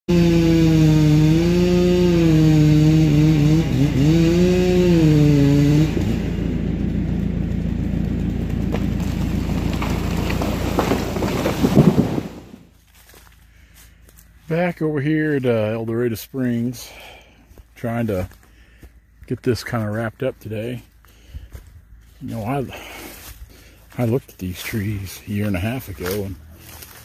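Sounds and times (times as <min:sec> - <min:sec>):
chainsaw cutting: 0:00.1 - 0:14.2, 0:20.7 - 0:27.0.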